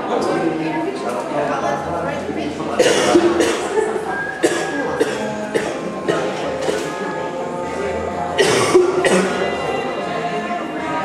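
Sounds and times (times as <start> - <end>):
music over loudspeakers: 2.5 - 11.0.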